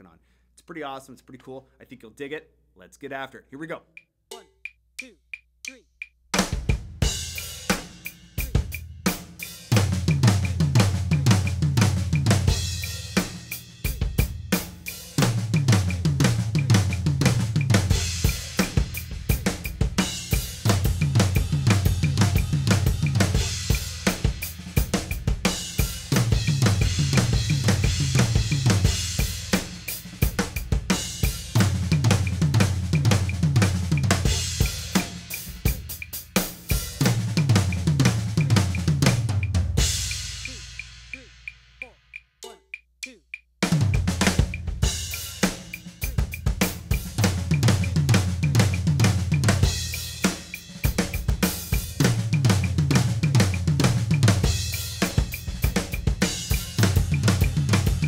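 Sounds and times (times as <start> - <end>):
drum kit playing fills: 3.6 - 58.0.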